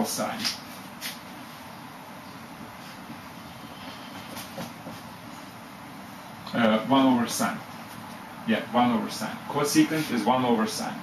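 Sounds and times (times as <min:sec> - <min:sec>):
steady room hiss: 0:00.0 - 0:11.0
marker writing on whiteboard: 0:02.6 - 0:05.1.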